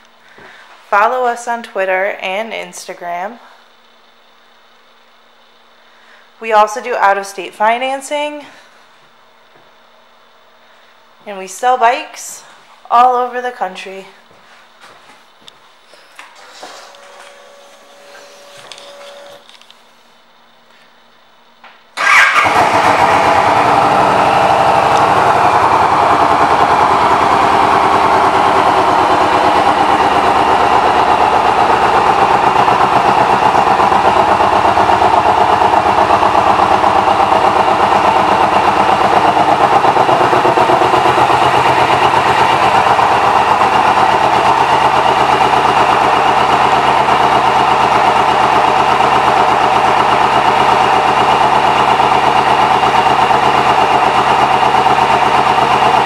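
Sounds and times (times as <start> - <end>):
motorcycle engine starting and idling: 16.4 - 19.6, 22.0 - 56.0.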